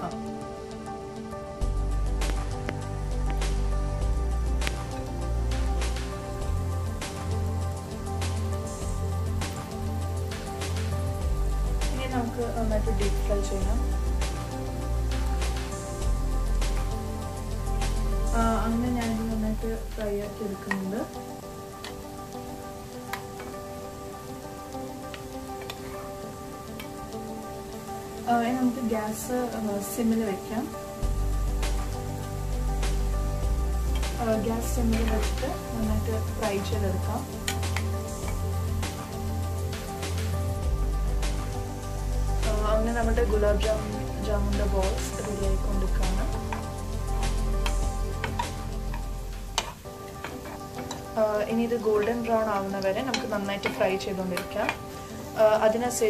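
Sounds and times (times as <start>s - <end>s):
background music: 0.0s - 56.0s
oil sizzling: 0.0s - 56.0s
crackles and pops: 2.2s - 3.7s, 4.5s - 5.0s.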